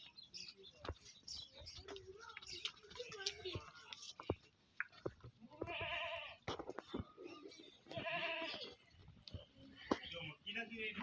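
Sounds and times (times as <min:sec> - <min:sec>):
young farm animal bleating: 0:05.4 - 0:06.5, 0:07.9 - 0:08.8.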